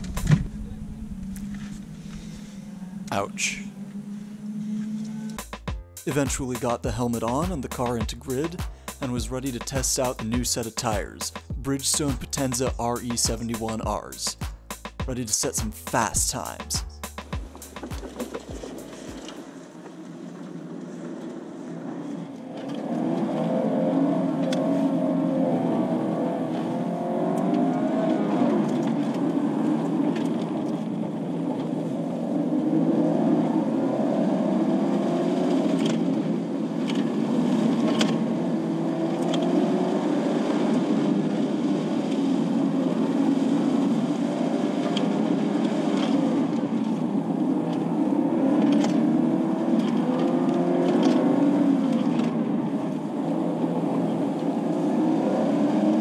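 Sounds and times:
car engine revving: 0:00.0 - 0:56.0.

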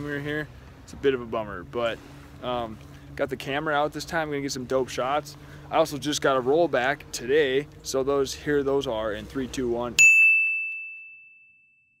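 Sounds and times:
bright bell-like ding: 0:10.0 - 0:12.0.

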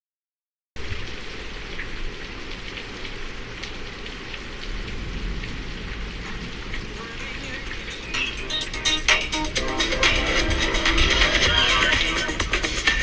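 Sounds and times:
raindrop splashes: 0:00.8 - 0:09.6
heavy rain: 0:00.8 - 0:13.0.

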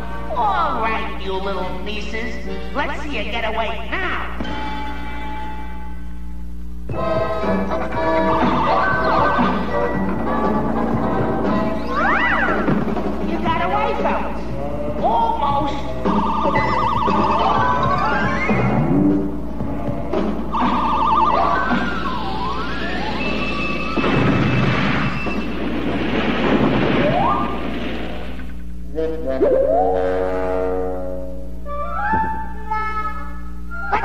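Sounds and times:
steady low hum: 0:00.0 - 0:34.0
comic thumps: 0:06.9 - 0:21.0, 0:21.6 - 0:29.9
cartoon orchestral music: 0:06.9 - 0:24.0, 0:28.9 - 0:34.0.

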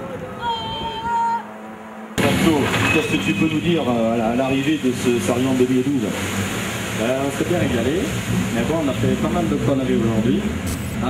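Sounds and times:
voices: 0:00.0 - 0:01.6
loud background noise: 0:00.0 - 0:11.0
rally car engine revving: 0:01.7 - 0:11.0.

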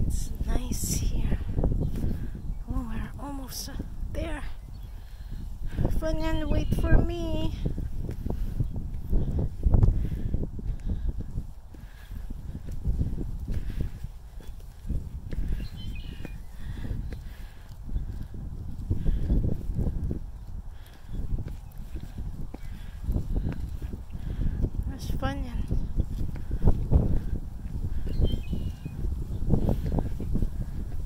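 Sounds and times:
wind rumbling on microphone: 0:00.0 - 0:31.0
footsteps on concrete stairs: 0:07.8 - 0:15.6, 0:16.2 - 0:24.9, 0:25.6 - 0:28.0.

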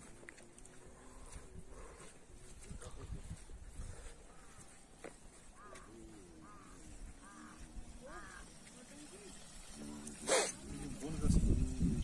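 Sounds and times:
people talking: 0:05.8 - 0:12.0.

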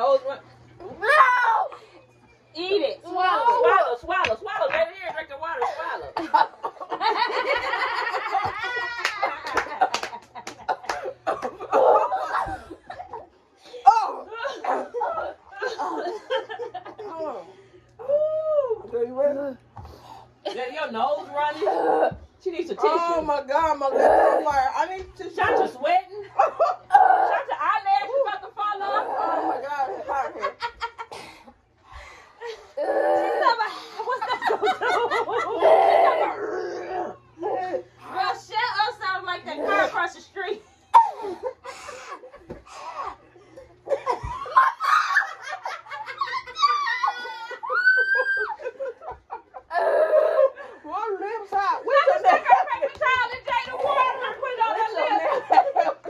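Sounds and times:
women laughing: 0:05.5 - 0:18.8, 0:25.3 - 0:31.2, 0:32.4 - 0:38.0, 0:40.9 - 0:56.0
women crying out and laughing: 0:44.2 - 0:50.7.

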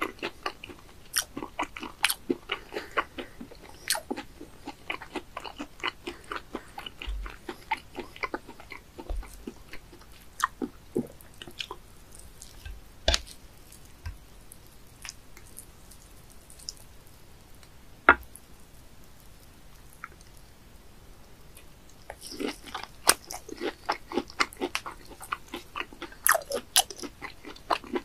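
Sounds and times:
wet crunchy chewing: 0:00.0 - 0:17.2, 0:21.6 - 0:28.0.

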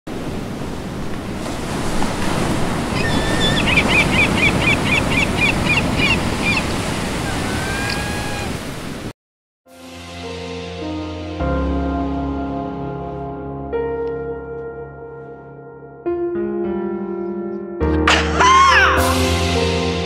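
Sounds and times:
ocean surf washing: 0:00.1 - 0:09.2
rising calls: 0:02.9 - 0:08.8
music: 0:09.7 - 0:20.0.

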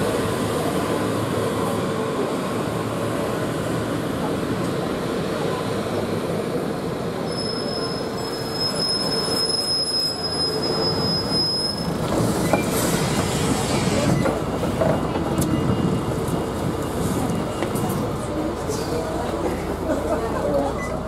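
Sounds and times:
high brake squeal: 0:07.2 - 0:14.3
bus engine idling: 0:12.9 - 0:21.0.

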